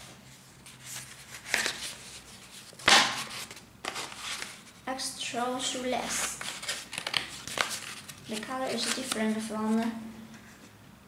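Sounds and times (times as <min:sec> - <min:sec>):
card envelope scraping and rustling: 0:00.6 - 0:04.7, 0:06.2 - 0:09.5.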